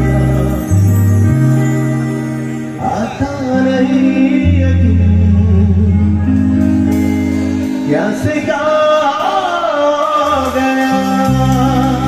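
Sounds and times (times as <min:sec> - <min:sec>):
gliding wavering lead melody: 0:00.0 - 0:12.0
low keyboard notes: 0:00.0 - 0:12.0
sustained chords: 0:00.0 - 0:12.0.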